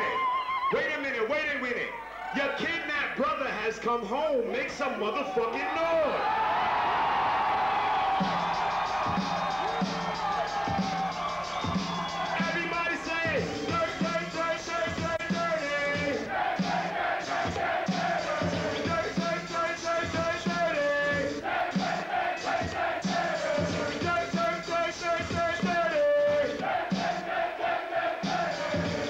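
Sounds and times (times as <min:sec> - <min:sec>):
crowd cheering and shouting: 0:00.0 - 0:03.2, 0:04.4 - 0:29.0
hip hop beat: 0:08.1 - 0:29.0.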